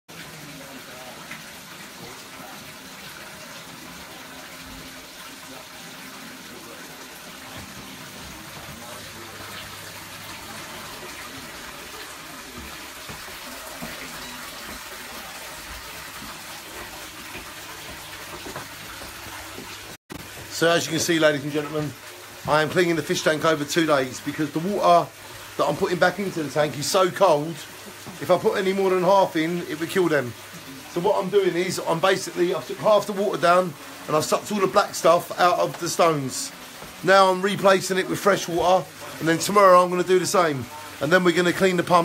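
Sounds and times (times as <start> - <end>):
water pouring into fish tank: 0.1 - 42.0.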